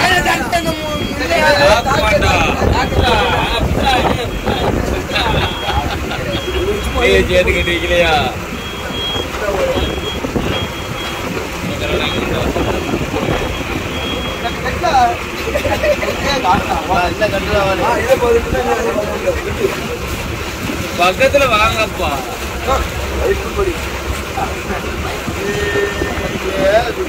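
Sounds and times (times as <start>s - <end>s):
boat engine running: 0.0s - 27.0s
men talking: 0.0s - 27.0s
high-pitched beep: 4.2s - 11.3s.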